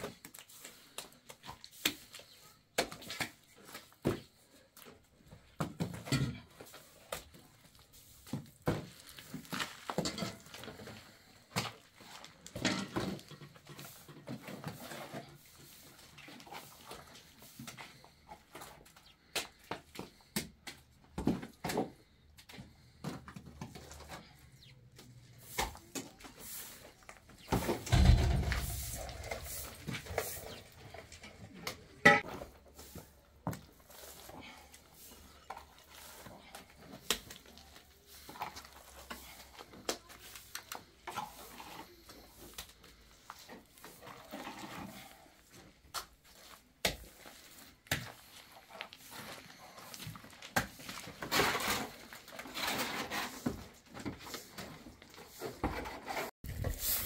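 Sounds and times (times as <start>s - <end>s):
heavy thump: 27.8s - 29.0s
trowel scraping plaster: 46.3s - 57.0s.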